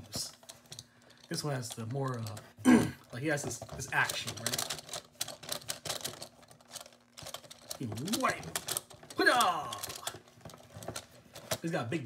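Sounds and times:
plastic toy clicking: 0.1s - 11.6s.

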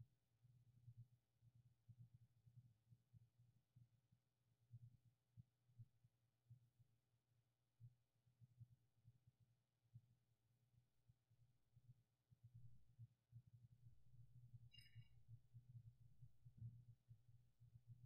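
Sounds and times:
faint steady hum: 10.8s - 18.0s.

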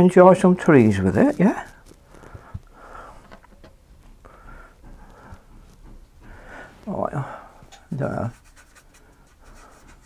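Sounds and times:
faint breathing: 1.7s - 3.5s, 4.2s - 7.9s, 8.9s - 10.0s.

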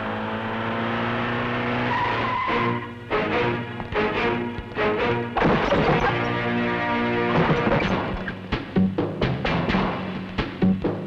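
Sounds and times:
dramatic film music: 2.2s - 11.0s.

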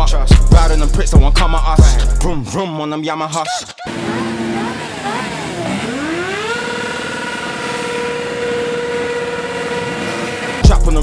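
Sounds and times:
hip-hop beat: 0.0s - 5.3s, 10.6s - 11.0s
motorcycle engine revving: 3.9s - 11.0s.

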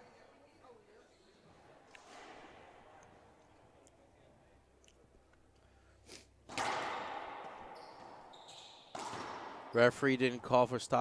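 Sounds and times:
sneakers squeaking on floor: 0.9s - 2.6s, 6.5s - 10.1s
racquetball hit echoing: 1.9s - 3.3s, 6.4s - 10.2s.

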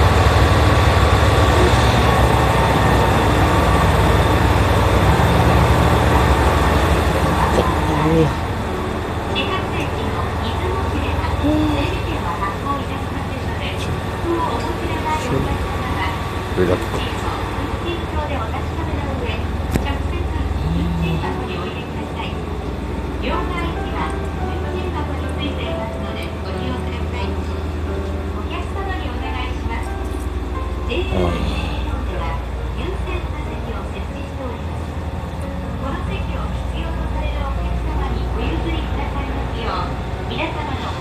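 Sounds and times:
low hum inside train car: 0.0s - 41.0s
indistinct voices: 7.2s - 8.6s, 9.4s - 22.5s, 30.9s - 32.9s.

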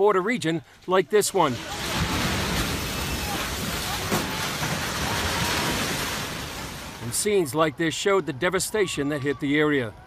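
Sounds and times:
rubble crashing down: 1.3s - 7.5s
building collapsing roar: 1.4s - 7.5s.

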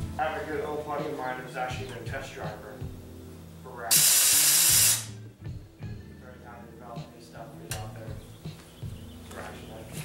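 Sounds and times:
loud burst of hissing air: 3.9s - 5.2s.

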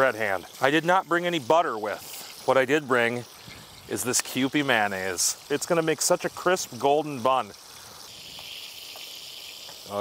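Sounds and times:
bun sizzling in hot oil: 0.0s - 10.0s.

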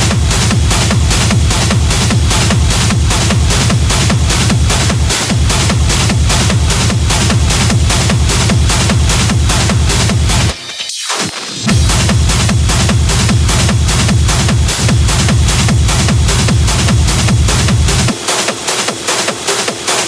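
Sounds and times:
fast kick drum: 0.0s - 10.6s, 11.5s - 20.0s
hard techno music: 0.0s - 20.0s.

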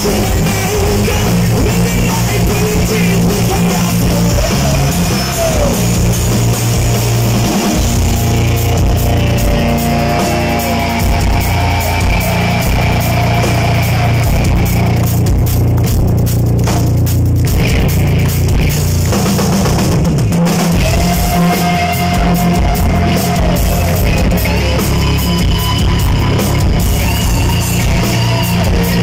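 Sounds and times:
distorted electric guitar solo: 0.0s - 15.3s
bass guitar: 0.0s - 29.0s
drum kit: 0.0s - 29.0s.

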